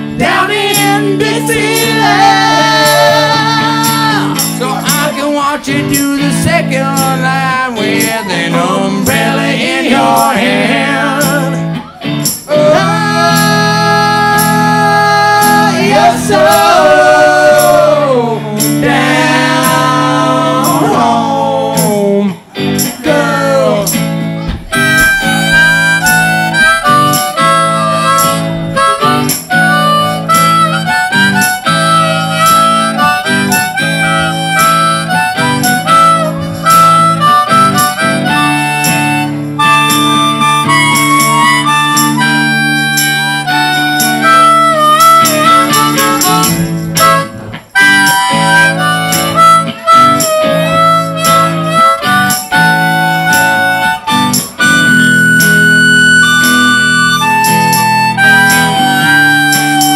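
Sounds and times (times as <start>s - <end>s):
electric guitar: 0.0s - 59.9s
harmonica solo: 0.0s - 59.9s.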